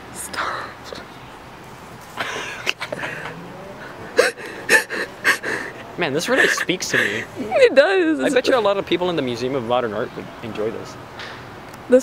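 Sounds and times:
person laughing breathily: 0:02.2 - 0:05.8, 0:06.4 - 0:07.3.

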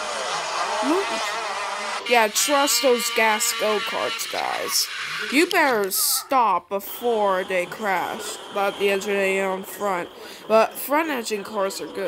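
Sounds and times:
go-kart engines buzzing: 0:00.0 - 0:06.2.

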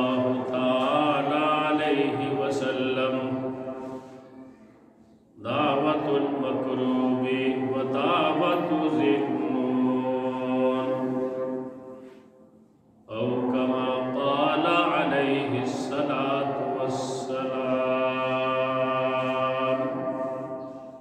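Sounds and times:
man chanting religious recitation: 0:00.0 - 0:04.7, 0:05.4 - 0:11.7, 0:13.1 - 0:20.9.

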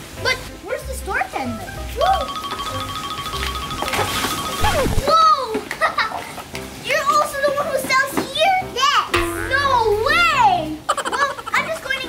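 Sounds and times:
child speaking: 0:06.9 - 0:12.0.

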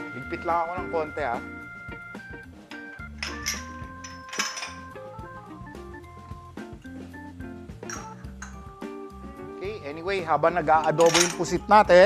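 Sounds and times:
instrumental music with keyboard: 0:00.0 - 0:12.0
kitchen utensils and pans clinking: 0:03.1 - 0:05.0, 0:07.8 - 0:08.7, 0:10.8 - 0:11.6.

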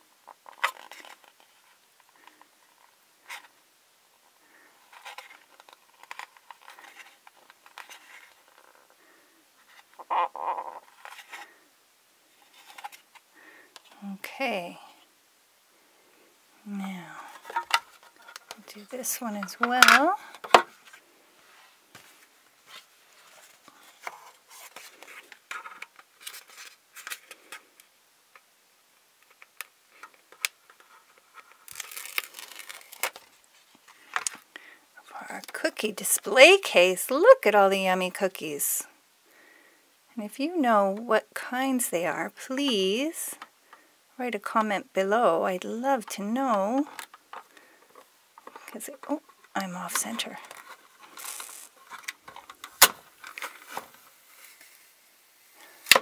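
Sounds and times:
sticker sheet rustling and crinkling: 0:21.9 - 0:27.7, 0:29.2 - 0:34.4, 0:46.0 - 0:54.7.

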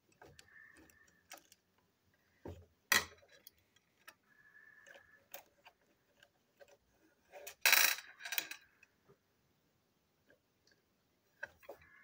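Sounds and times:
toy parts clicking and clattering: 0:00.0 - 0:01.8, 0:02.9 - 0:08.9.

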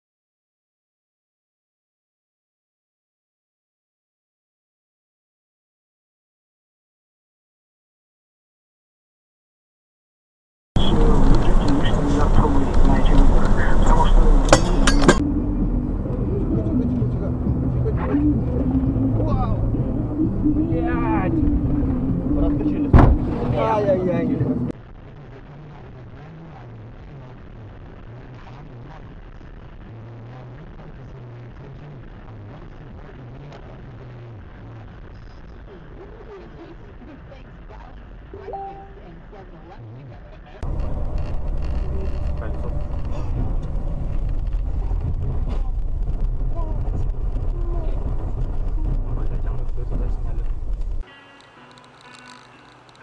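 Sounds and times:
voices: 0:10.8 - 0:29.2
vehicle and road noise: 0:10.8 - 0:53.0.

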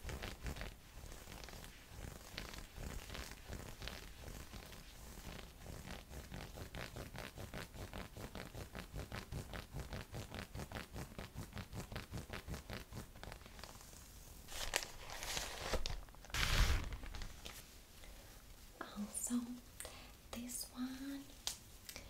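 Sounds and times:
nails scratching fabric: 0:00.0 - 0:17.8
plastic bag rustling: 0:14.5 - 0:17.8.

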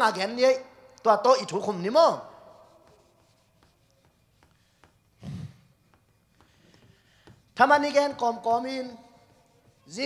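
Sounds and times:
man speaking with room echo: 0:00.0 - 0:03.0, 0:07.6 - 0:10.0.

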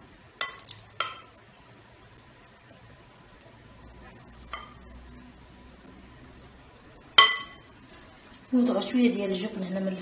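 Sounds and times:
spoon clinking against glass bowl: 0:00.4 - 0:01.3, 0:07.2 - 0:07.6.

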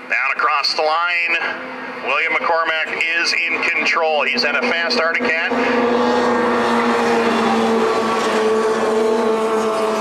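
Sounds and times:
snowmobile engines droning: 0:00.0 - 0:10.0.

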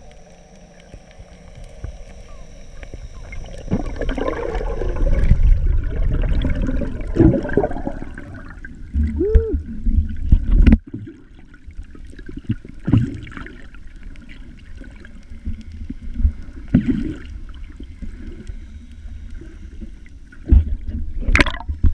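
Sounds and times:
muffled underwater sloshing: 0:00.0 - 0:21.9.

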